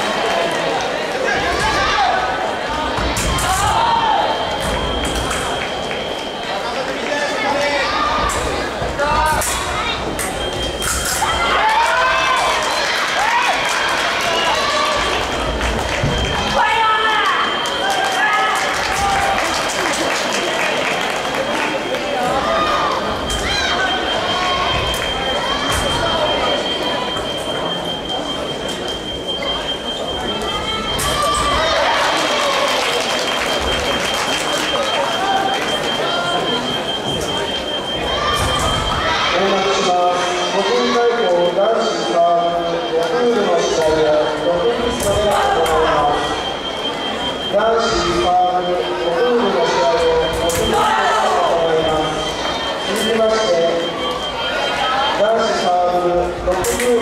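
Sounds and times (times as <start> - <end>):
voices and calls: 0.9 - 57.0
steady high electronic tone: 7.4 - 20.0, 21.7 - 57.0
steady high-pitched whine: 21.0 - 57.0.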